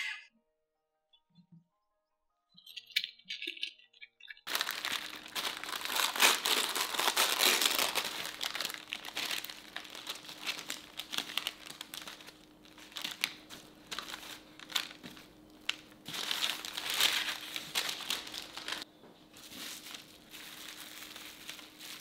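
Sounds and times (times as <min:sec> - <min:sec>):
baking paper crinkling: 0:04.5 - 0:22.0.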